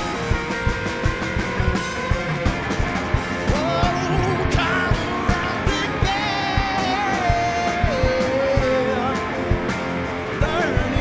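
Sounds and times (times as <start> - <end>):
drum hits: 0.0 - 11.0
lead guitar holding long notes: 0.0 - 11.0
live rock band playing: 0.0 - 11.0.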